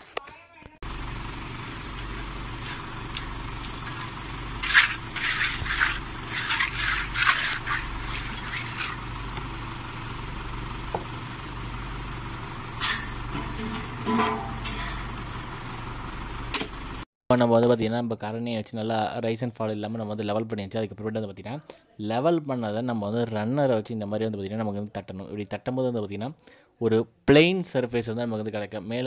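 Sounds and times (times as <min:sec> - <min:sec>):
engine running steadily: 0:00.8 - 0:17.0
trowel scraping wet concrete: 0:02.6 - 0:09.0.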